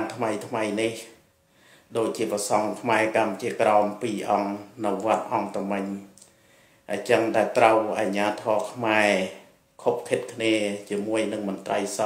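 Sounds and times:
man talking: 0:00.0 - 0:01.2, 0:01.9 - 0:06.2, 0:06.9 - 0:12.0.

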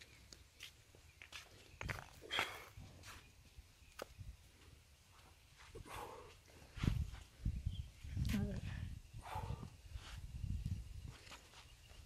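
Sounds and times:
man breathing hard: 0:05.6 - 0:07.0, 0:08.8 - 0:10.2.

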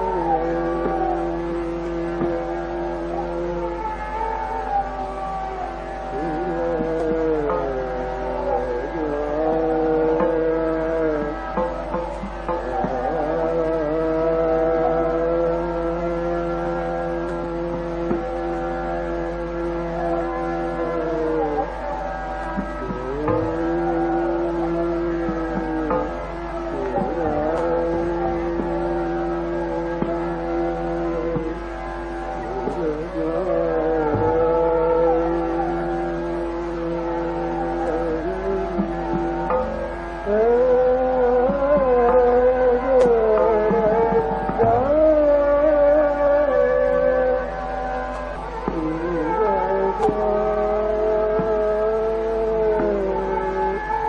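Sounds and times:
drone of held notes: 0:00.0 - 0:54.0
person singing gliding notes: 0:00.0 - 0:54.0
man singing held notes: 0:06.1 - 0:11.8, 0:48.7 - 0:54.0
tabla stroke: 0:06.2 - 0:49.3.

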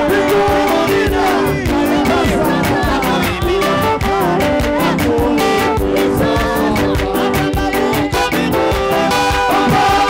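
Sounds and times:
gospel music with fast beat: 0:00.0 - 0:10.0
group singing and shouting: 0:00.0 - 0:10.0.

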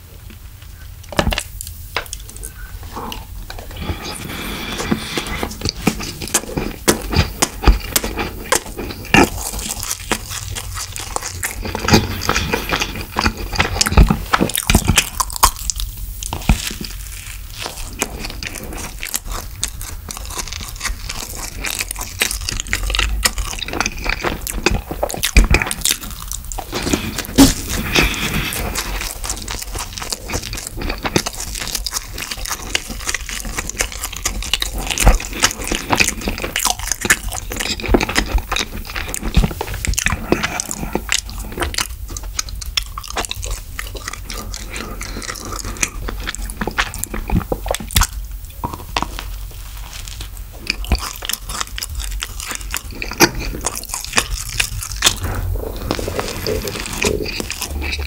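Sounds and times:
person chewing: 0:00.6 - 0:58.0.

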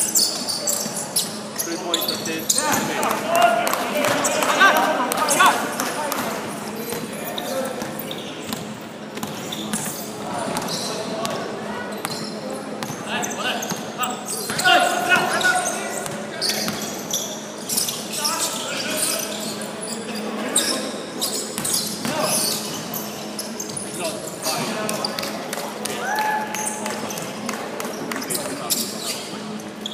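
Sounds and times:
players calling out: 0:00.1 - 0:08.4.

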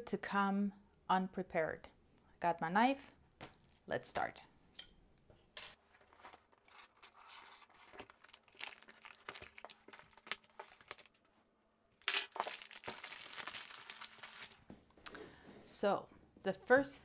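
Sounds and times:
plastic bag crinkling: 0:06.1 - 0:11.3, 0:12.0 - 0:14.7.

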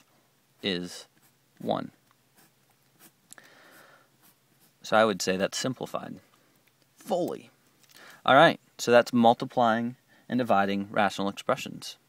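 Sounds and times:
pencil scratching on paper: 0:02.3 - 0:03.2, 0:04.2 - 0:04.8.

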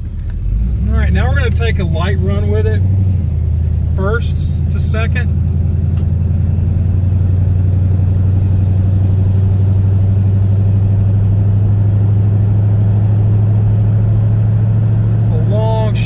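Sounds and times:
car engine running: 0:00.0 - 0:16.0.

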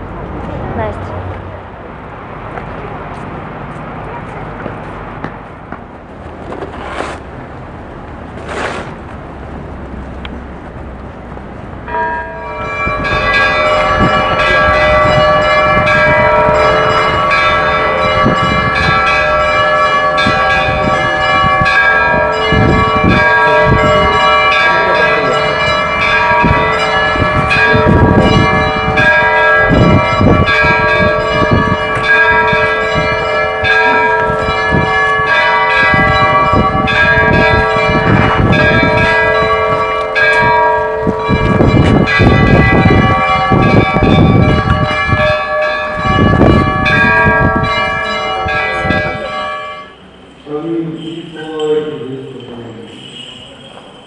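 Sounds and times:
church bells pealing: 0:11.8 - 0:54.0.

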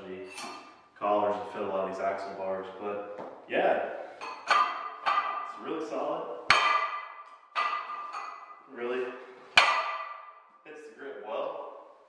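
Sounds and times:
metal barbell clanking down: 0:04.2 - 0:05.6, 0:06.5 - 0:08.7, 0:09.5 - 0:10.4.

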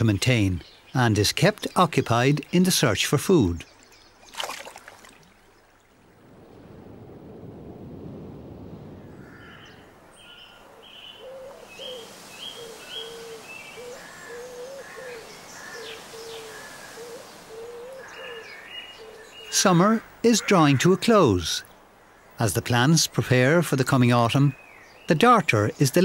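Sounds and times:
birds chirping: 0:00.0 - 0:05.9, 0:08.8 - 0:26.0
bird cooing: 0:10.4 - 0:19.5.

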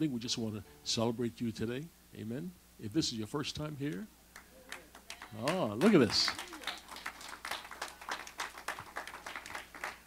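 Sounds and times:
congregation applauding: 0:04.4 - 0:10.0.

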